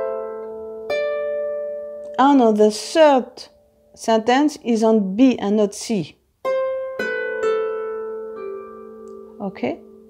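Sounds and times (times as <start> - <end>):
harp notes plucked: 0.0 - 3.9, 6.4 - 10.0.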